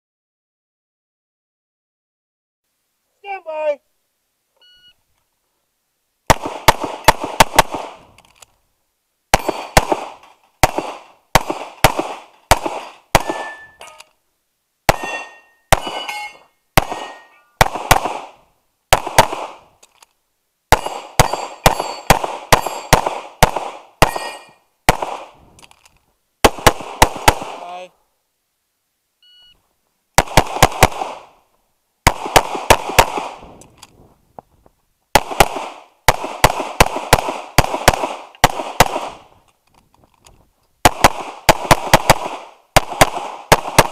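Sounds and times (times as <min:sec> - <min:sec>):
pistol shots: 0:06.3 - 0:08.1, 0:09.3 - 0:13.8, 0:14.9 - 0:19.7, 0:20.7 - 0:25.4, 0:26.4 - 0:27.8, 0:30.2 - 0:31.4, 0:32.0 - 0:33.6, 0:35.1 - 0:39.3, 0:40.8 - 0:43.9
steel targets ringing: 0:13.2 - 0:14.0, 0:14.9 - 0:17.6, 0:20.8 - 0:23.0, 0:24.0 - 0:24.6.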